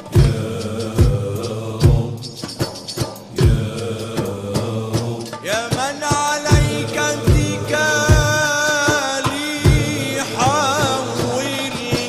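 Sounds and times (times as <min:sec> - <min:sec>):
low drum beat: 0:00.0 - 0:12.0
male ensemble chanting: 0:00.0 - 0:12.0.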